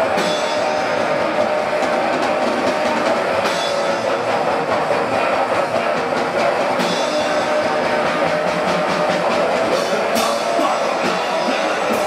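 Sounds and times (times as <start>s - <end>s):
distorted guitar noise: 0.0s - 12.0s
drum hits: 0.0s - 12.0s.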